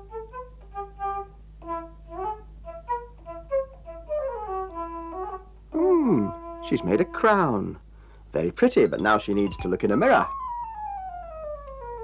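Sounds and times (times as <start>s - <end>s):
faint steady low hum: 0.0s - 12.0s.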